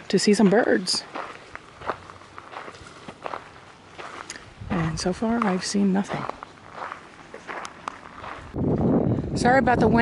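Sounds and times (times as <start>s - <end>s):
footsteps on dirt path: 0.0s - 9.4s
wind buffeting microphone: 4.0s - 6.9s, 7.5s - 10.0s.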